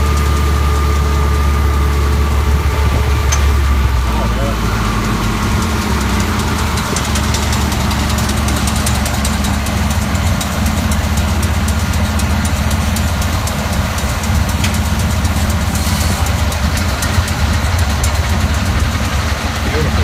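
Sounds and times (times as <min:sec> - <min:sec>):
tractor diesel engine running: 0:00.0 - 0:20.0
baler fast clicking rattle: 0:02.5 - 0:20.0.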